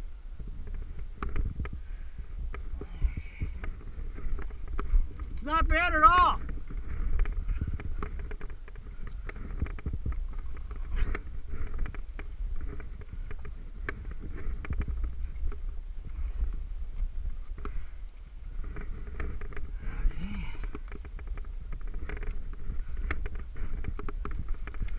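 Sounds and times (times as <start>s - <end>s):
low rumble on microphone: 0.0s - 24.9s
scuffs and clicks against rock: 0.4s - 24.9s.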